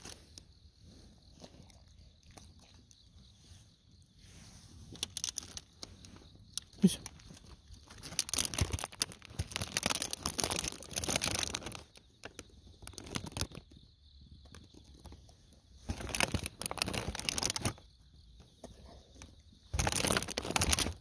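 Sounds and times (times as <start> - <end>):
crinkly rustling and crunching: 0.0 - 21.0
insects chirping: 0.0 - 21.0.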